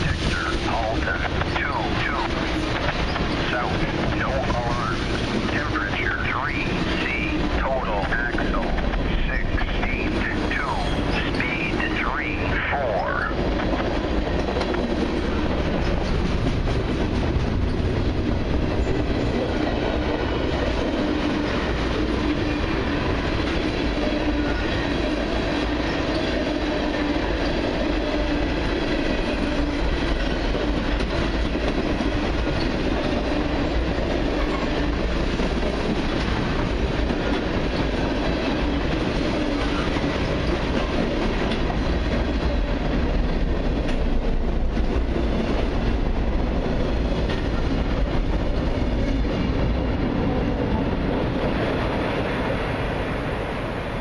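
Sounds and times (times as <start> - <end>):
freight train rumbling past: 0.0 - 54.0.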